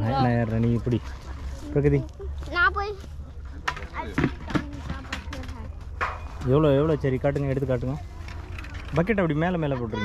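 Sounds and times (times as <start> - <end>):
child speaking: 2.2 - 3.2, 3.9 - 5.8, 9.7 - 10.0.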